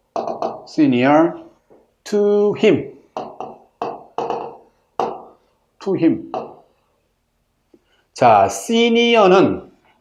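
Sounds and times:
pen tapping on touchscreen: 0:00.2 - 0:00.7, 0:03.2 - 0:05.3, 0:06.3 - 0:06.6.

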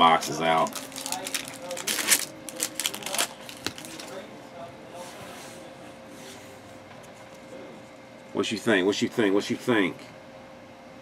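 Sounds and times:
cards rustling: 0:00.3 - 0:04.2.

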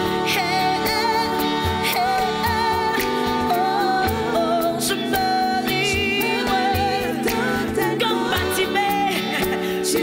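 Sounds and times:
live band accompaniment: 0:00.0 - 0:10.0
woman singing into microphone: 0:00.0 - 0:10.0.

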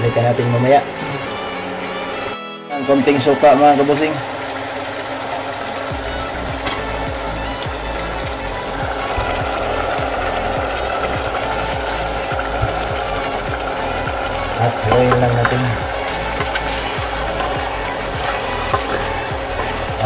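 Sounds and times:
background music: 0:00.0 - 0:20.0
meat frying with fine crackling: 0:03.2 - 0:20.0.

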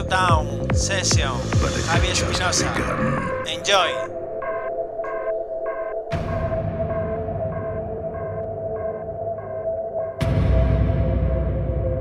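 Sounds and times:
heavy bass: 0:00.0 - 0:03.6
psytrance synth pattern: 0:00.0 - 0:10.3.

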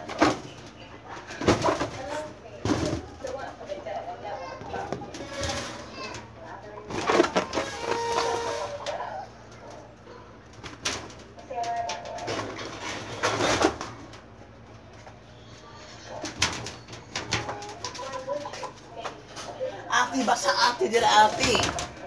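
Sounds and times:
girl speaking: 0:19.9 - 0:21.8.

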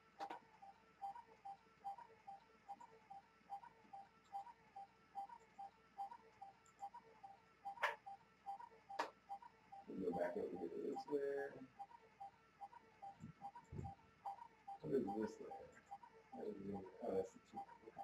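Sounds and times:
computer mouse clicks: 0:08.9 - 0:09.2.

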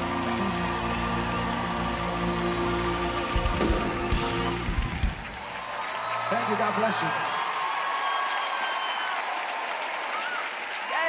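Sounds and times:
live band sustained chord: 0:00.0 - 0:05.4
hard drum hits: 0:03.3 - 0:05.4.

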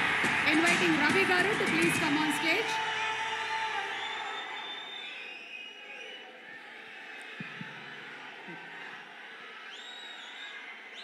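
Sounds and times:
audience cheering and murmuring: 0:00.0 - 0:11.0.

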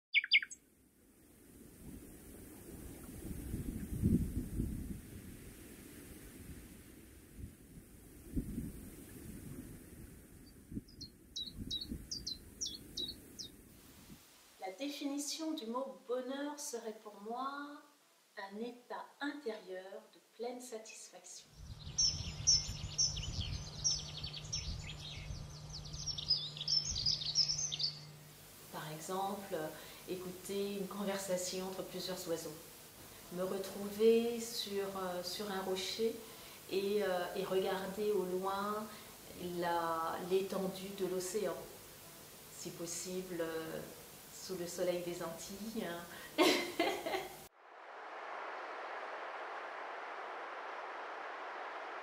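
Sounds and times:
bird chirps falling in pitch: 0:00.1 - 0:00.6
songbirds chirping and singing: 0:00.1 - 0:00.6, 0:10.9 - 0:13.5, 0:21.6 - 0:28.2
low hum with rumble: 0:21.6 - 0:29.9
low rumble: 0:47.6 - 0:52.0.

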